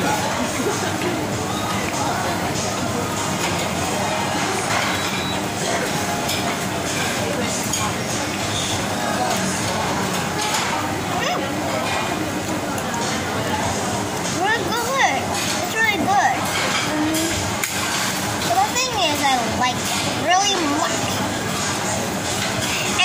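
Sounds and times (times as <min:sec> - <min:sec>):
chatter of diners: 0:00.0 - 0:23.0
dishes and cutlery clinking: 0:16.4 - 0:19.2.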